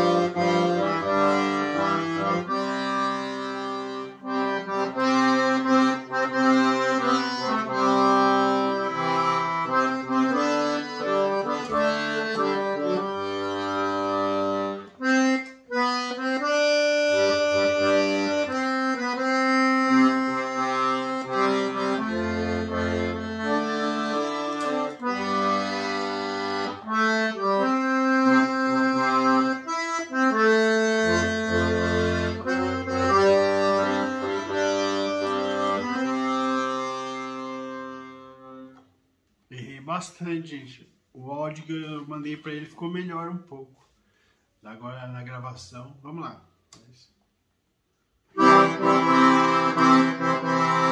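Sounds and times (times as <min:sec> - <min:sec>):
accordion playing a hymn: 0:00.0 - 0:38.9, 0:48.3 - 0:50.9.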